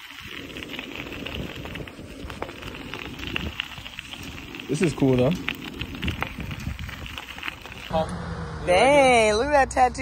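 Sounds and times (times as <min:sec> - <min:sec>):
bike clicks and rattles: 0:00.0 - 0:07.9
wind noise on microphone: 0:00.0 - 0:07.9
bicycle tyres on rough road: 0:00.0 - 0:09.6.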